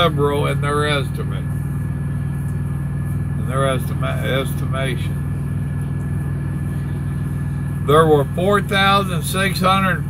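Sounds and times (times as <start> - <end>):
diesel engine idling: 0.0 - 10.0.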